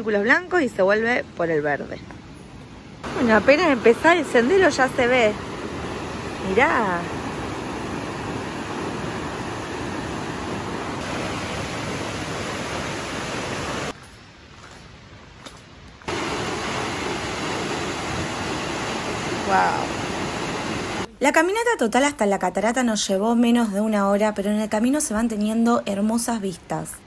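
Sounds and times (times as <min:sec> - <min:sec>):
waterfall rushing: 0:03.0 - 0:13.9, 0:16.1 - 0:21.1.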